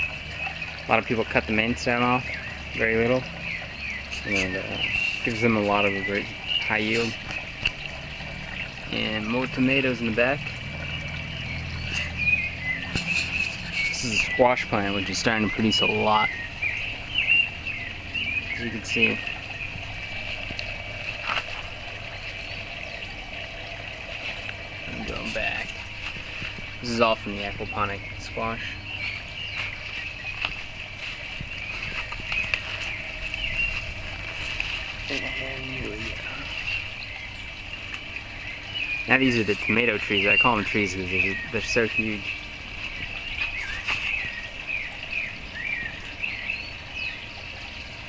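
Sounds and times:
small birds chirping: 0.0s - 48.0s
steady low hum: 0.0s - 48.0s.

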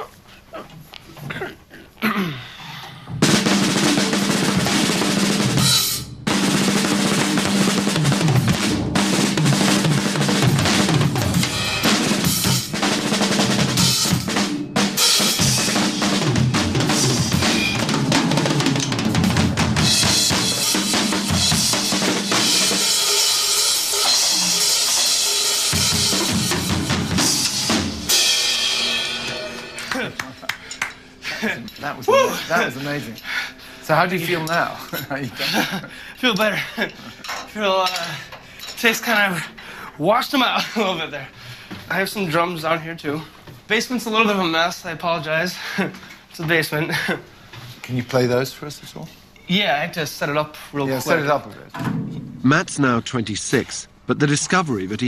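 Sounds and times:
drum kit playing loudly: 3.1s - 31.5s
cymbals ringing: 13.8s - 19.2s, 19.8s - 38.8s.

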